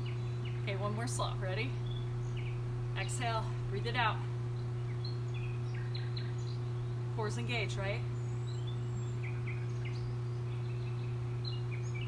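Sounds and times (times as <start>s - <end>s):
low background hum: 0.0s - 12.0s
faint bird chirps: 4.6s - 7.0s.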